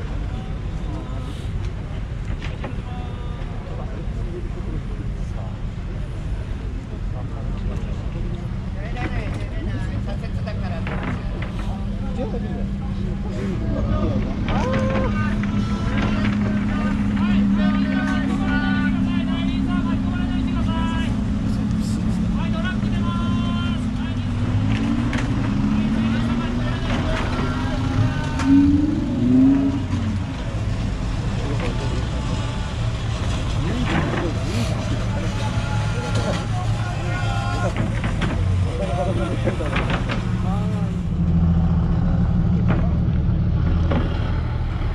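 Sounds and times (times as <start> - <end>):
people talking: 0.0 - 43.4
car and truck engines running: 0.0 - 44.9
engine revving: 13.8 - 37.1.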